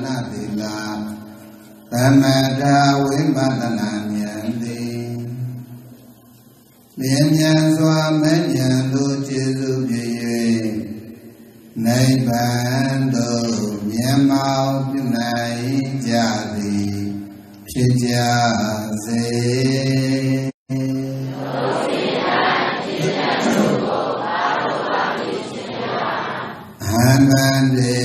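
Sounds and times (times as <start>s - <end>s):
man chanting: 0.0s - 5.9s, 7.0s - 21.6s, 26.8s - 28.0s.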